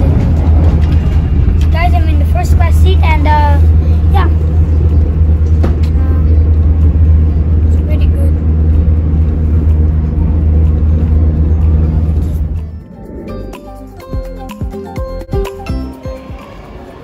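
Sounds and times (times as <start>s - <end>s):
train cabin rumble: 0.0s - 15.3s.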